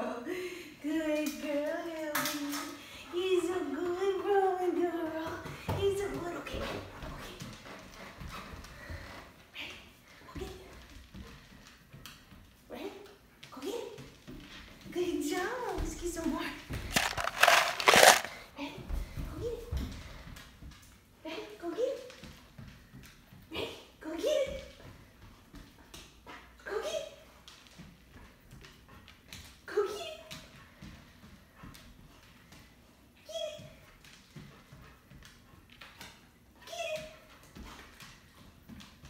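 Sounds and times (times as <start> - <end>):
dog claws clicking on hardwood floor: 16.6 - 18.4.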